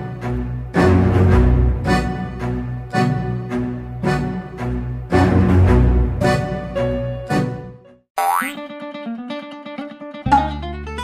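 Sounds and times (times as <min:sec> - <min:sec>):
bouncy plucked-string tune: 0:08.2 - 0:11.0.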